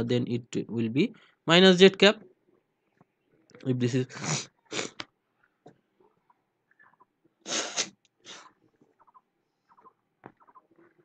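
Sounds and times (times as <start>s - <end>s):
faint small sounds: 2.1s - 11.0s.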